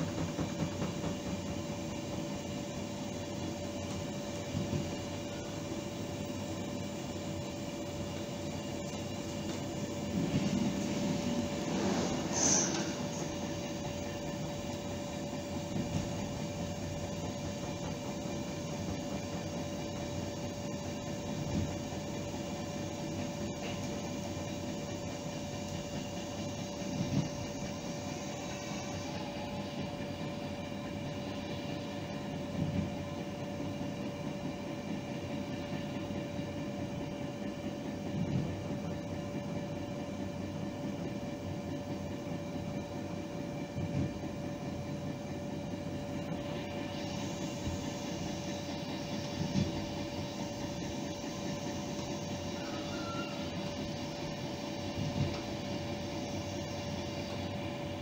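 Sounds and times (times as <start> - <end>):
constant whine: 0.0 - 58.0
train rumbling on track: 0.0 - 58.0.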